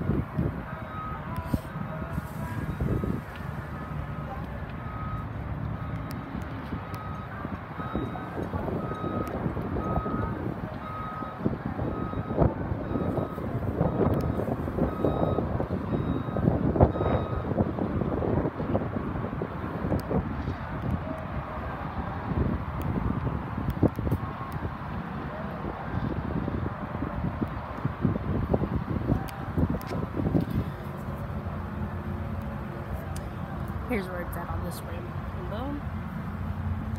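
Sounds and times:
wind rumble on microphone: 0.0s - 36.9s.

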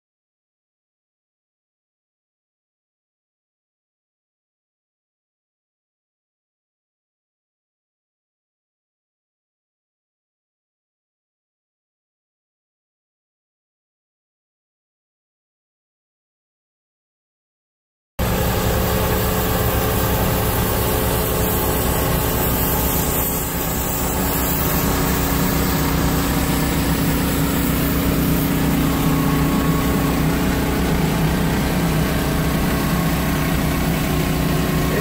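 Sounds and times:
continuous steam hiss: 18.2s - 30.5s
engine running: 18.2s - 35.0s.

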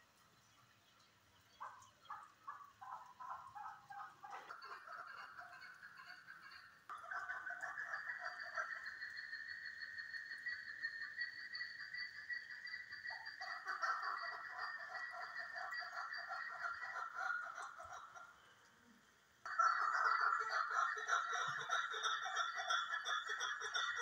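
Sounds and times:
partridges calling: 1.4s - 18.3s, 19.5s - 24.0s.

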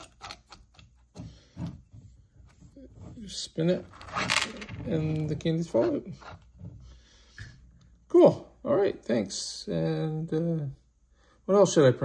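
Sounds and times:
person speaking: 2.6s - 6.4s.

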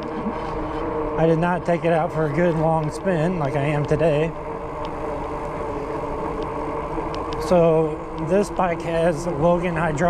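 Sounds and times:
e-bike motor hum: 0.0s - 10.0s
wind buffeting microphone: 0.0s - 10.0s.

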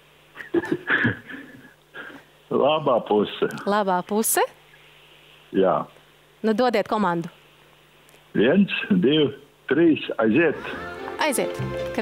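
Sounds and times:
studio speech: 2.5s - 4.6s, 5.5s - 7.4s, 8.3s - 12.0s.

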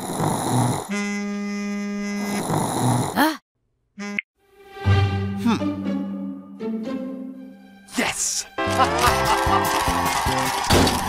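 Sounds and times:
man snoring: 0.0s - 1.0s, 2.0s - 3.4s.

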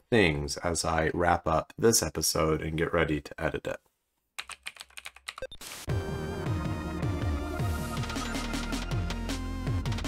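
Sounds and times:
keyboard typing: 4.4s - 5.6s
electronic music: 5.4s - 10.0s.

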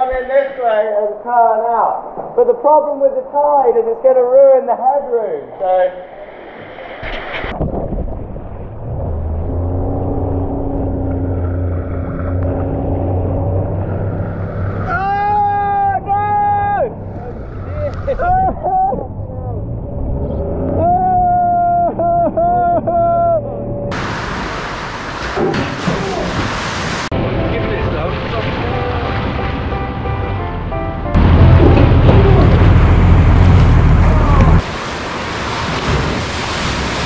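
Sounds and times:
motorboat engine running: 8.5s - 15.4s, 27.2s - 37.0s
rush of water: 23.9s - 29.8s, 31.2s - 37.0s.

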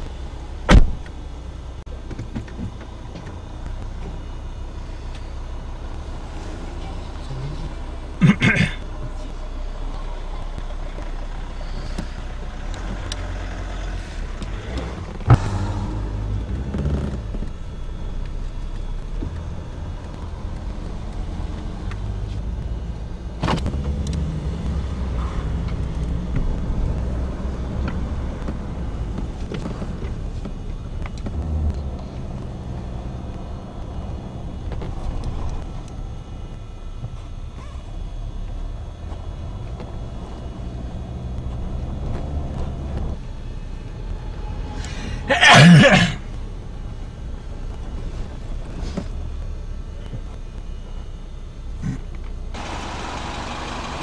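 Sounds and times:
car engine and road rumble: 0.0s - 54.0s.

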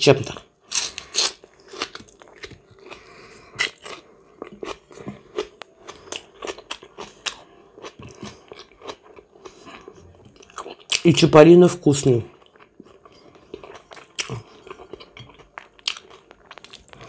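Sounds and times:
wet chewing and lip smacking: 12.3s - 17.0s.

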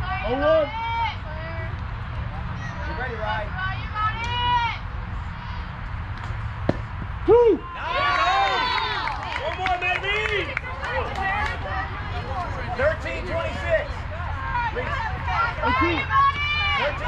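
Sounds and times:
people shouting and cheering: 7.2s - 17.0s.

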